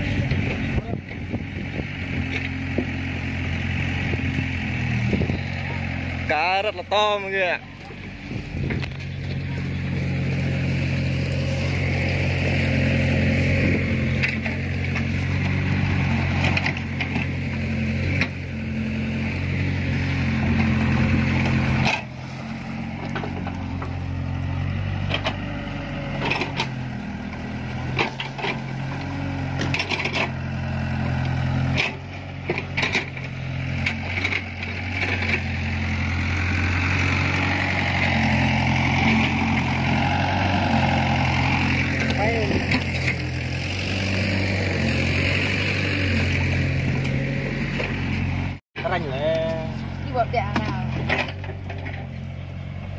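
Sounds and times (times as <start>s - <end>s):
excavator diesel engine running: 0.0s - 52.9s.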